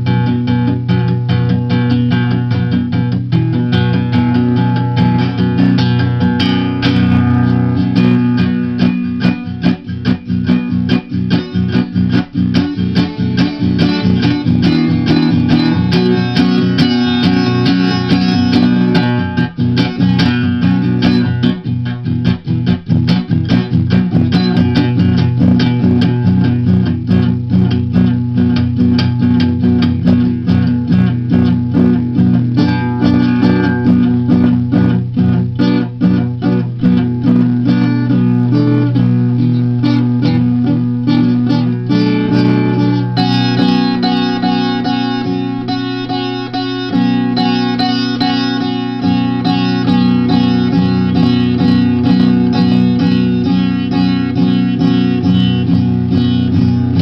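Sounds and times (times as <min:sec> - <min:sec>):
plucked guitar: 0:00.0 - 0:57.0.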